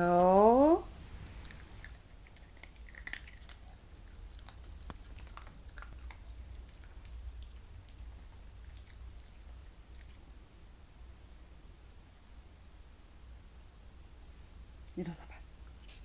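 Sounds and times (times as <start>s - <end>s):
puppy chewing a treat: 1.3s - 10.3s.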